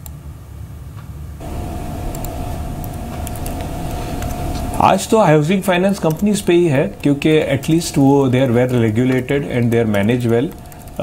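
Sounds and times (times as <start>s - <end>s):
mid-pitched hum: 0.0s - 11.0s
low rumble: 1.4s - 9.0s.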